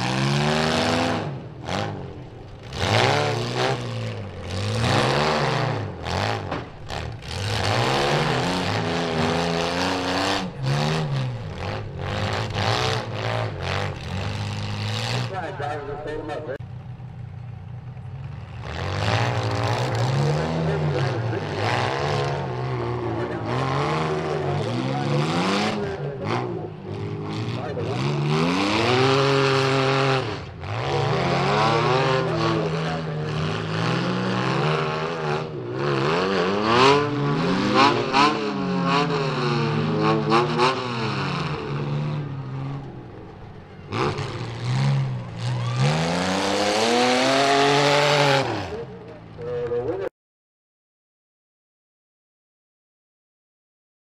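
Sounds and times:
car engines revving: 0.0s - 50.1s.

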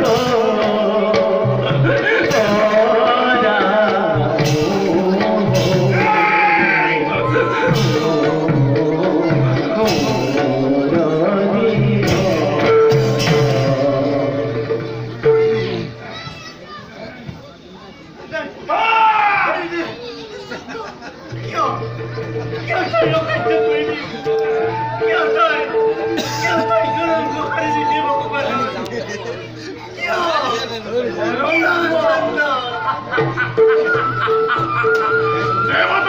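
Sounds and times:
audience chatter with children: 0.0s - 36.0s
stage music held note: 21.4s - 32.4s.

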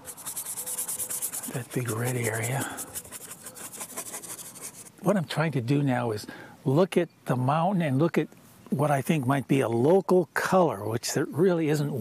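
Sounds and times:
brush scrubbing paint: 0.0s - 5.0s.

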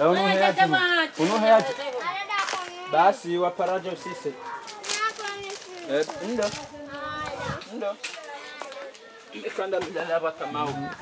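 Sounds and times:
people talking and calling: 0.0s - 11.0s.

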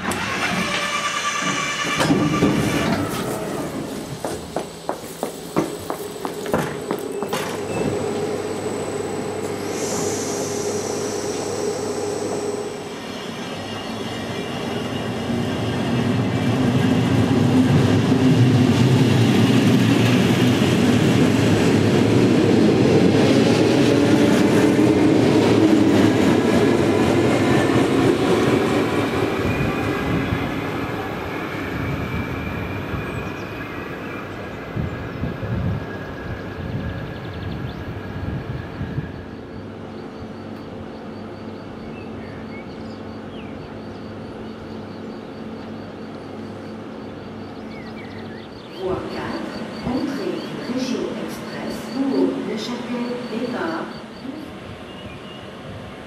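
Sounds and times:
electric train passing: 0.0s - 56.0s.

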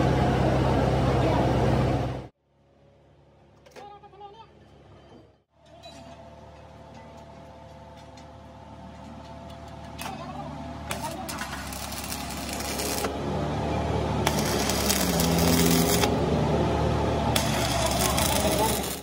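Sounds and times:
steady machine hum: 6.3s - 19.0s
welding arc crackling: 10.9s - 13.2s, 14.2s - 16.3s, 17.3s - 19.0s.

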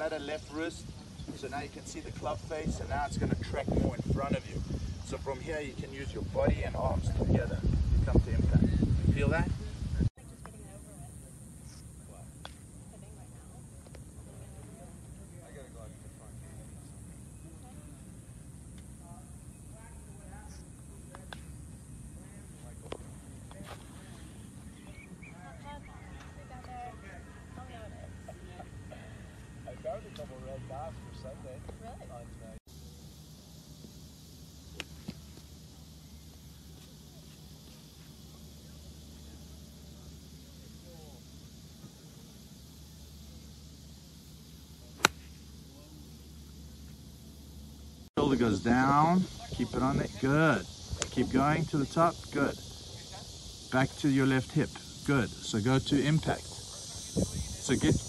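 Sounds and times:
distant voices: 0.0s - 58.0s
faint outdoor background: 0.0s - 58.0s
high hiss: 32.6s - 58.0s
golf iron striking ball: 45.0s - 45.4s.

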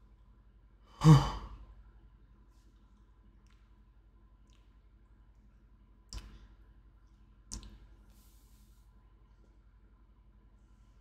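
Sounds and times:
man sighing: 1.0s - 1.5s.

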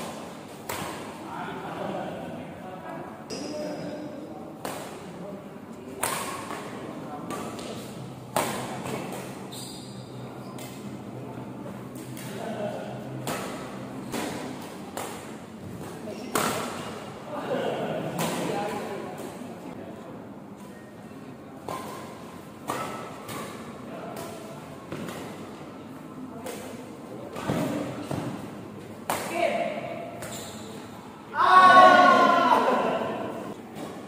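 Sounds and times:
players' voices: 0.0s - 9.5s, 10.3s - 22.8s, 23.6s - 33.7s.

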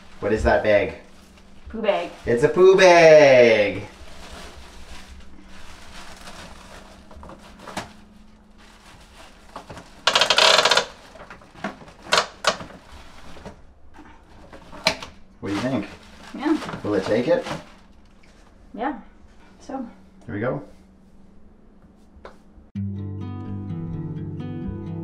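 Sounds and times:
plastic bag rustling: 0.0s - 18.7s.

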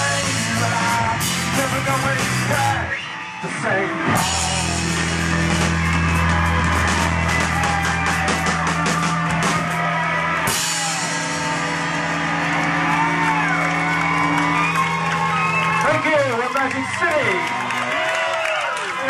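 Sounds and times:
rock band playing live: 0.0s - 18.5s.

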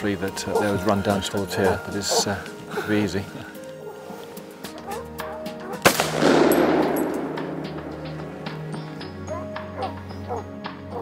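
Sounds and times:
rifle shot with rolling echo: 5.8s - 8.6s.

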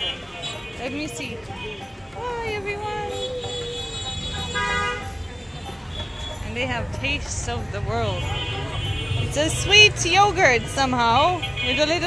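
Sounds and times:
low rumble of street traffic: 0.0s - 12.0s
vehicle horn toot: 3.2s - 5.2s, 8.1s - 9.4s.

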